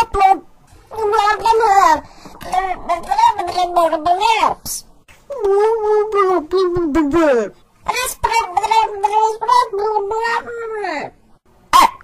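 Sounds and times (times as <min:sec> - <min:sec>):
pitch-shifted computer voices: 0:00.0 - 0:11.1.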